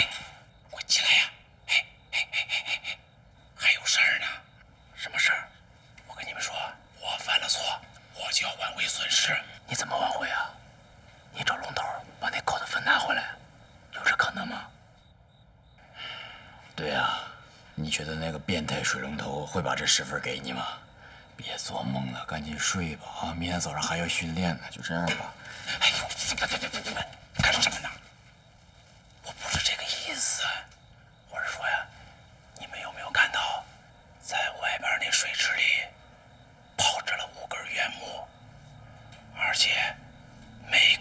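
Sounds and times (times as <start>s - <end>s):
man whispering: 0.0s - 14.8s, 16.7s - 28.0s, 29.2s - 36.1s, 36.8s - 38.5s, 39.3s - 41.0s
whispered speech: 6.1s - 10.6s, 11.3s - 14.8s, 29.2s - 32.0s, 32.6s - 36.0s, 36.8s - 38.3s, 39.3s - 40.0s, 40.6s - 41.0s.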